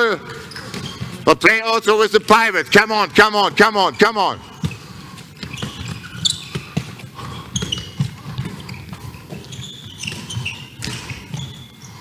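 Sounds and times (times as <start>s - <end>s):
shoes squeaking: 0.0s - 1.3s, 2.1s - 12.0s
balls bouncing on hall floor: 0.0s - 12.0s.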